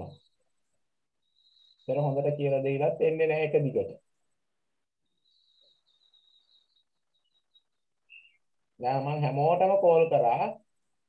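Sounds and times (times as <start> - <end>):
person speaking: 1.8 - 4.4
high-pitched bird chirping: 5.1 - 8.6.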